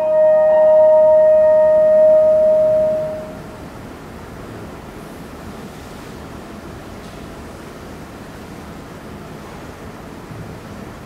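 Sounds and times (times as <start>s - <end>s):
french horn note: 0.0s - 3.4s
piano chords: 0.0s - 3.5s
steady background hiss: 0.0s - 11.0s.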